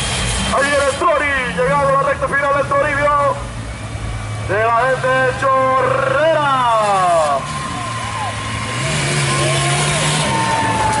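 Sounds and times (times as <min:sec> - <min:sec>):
jeep engine running under load: 0:00.0 - 0:11.0
crowd voices: 0:04.8 - 0:11.0.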